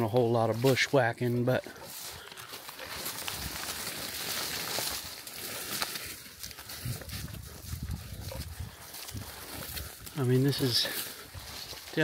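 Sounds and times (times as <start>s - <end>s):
leaves and branches rustling: 0.0s - 12.0s
twigs snapping: 1.8s - 7.4s.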